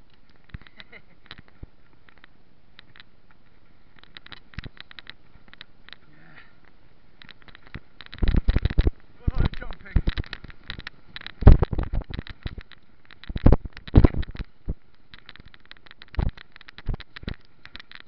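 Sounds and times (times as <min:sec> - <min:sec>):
mountain bike rattling and knocking: 0:07.1 - 0:18.0.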